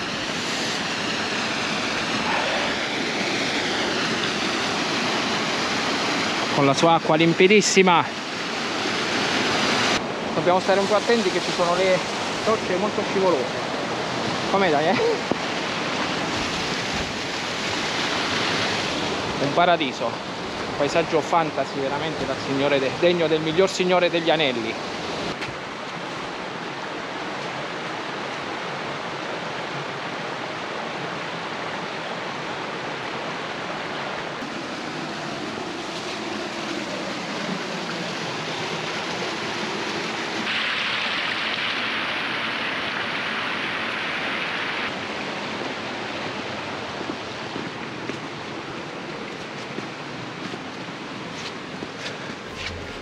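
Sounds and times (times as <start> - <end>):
river water rushing over rocks: 0.0 - 53.0.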